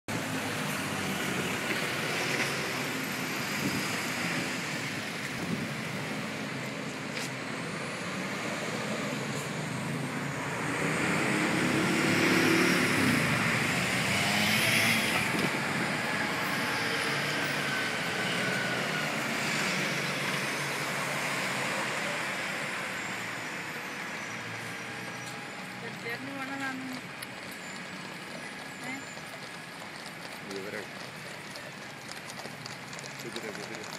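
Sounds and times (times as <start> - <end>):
city road traffic: 0.1 - 33.9
loud vehicle passing: 7.3 - 33.9.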